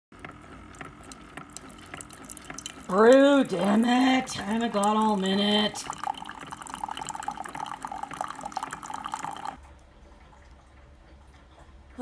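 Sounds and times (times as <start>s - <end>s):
coffee trickling into mug: 0.2s - 9.6s.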